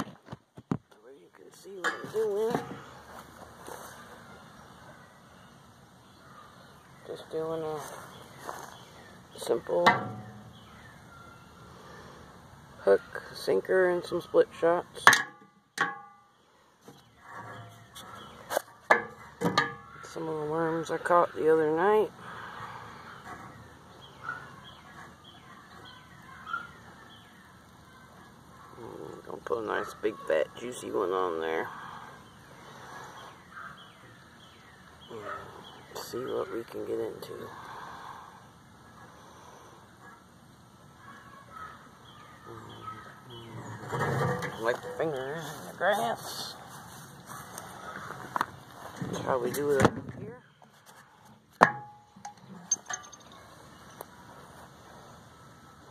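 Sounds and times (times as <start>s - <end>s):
faint outdoor background: 0.0s - 55.9s
bird calling: 16.5s - 49.8s.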